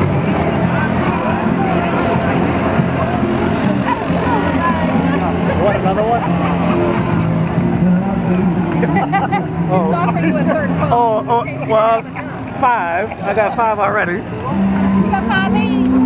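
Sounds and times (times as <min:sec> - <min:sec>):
motor scooter engine droning: 0:00.0 - 0:16.0
street crowd chatter: 0:00.0 - 0:16.0.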